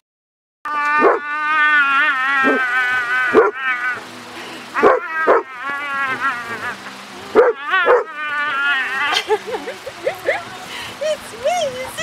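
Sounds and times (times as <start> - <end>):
dog yelping and whining: 0.9 - 1.5, 2.4 - 2.7, 3.3 - 3.7, 4.8 - 5.5, 7.4 - 8.6.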